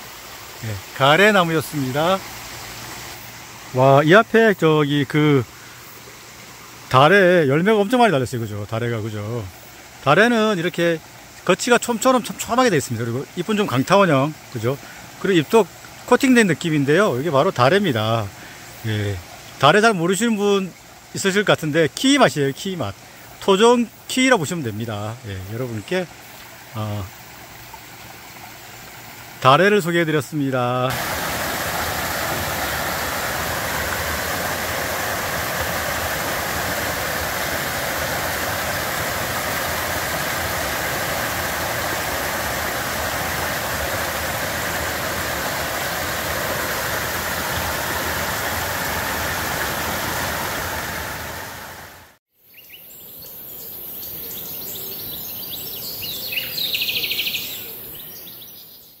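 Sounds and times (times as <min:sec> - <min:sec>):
stream rushing over boulders: 0:00.0 - 0:52.2.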